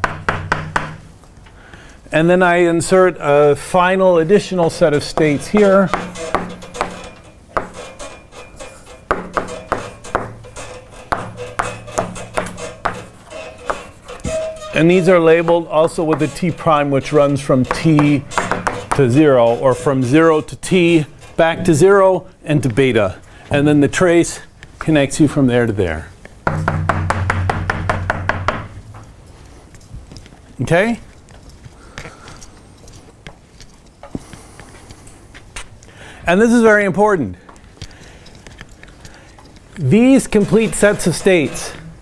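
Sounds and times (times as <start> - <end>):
chalk tapping and scraping on blackboard: 0.0 - 1.1, 5.0 - 21.8, 40.0 - 41.9
chalk squeak: 10.6 - 16.7
low steady hum: 26.4 - 30.4.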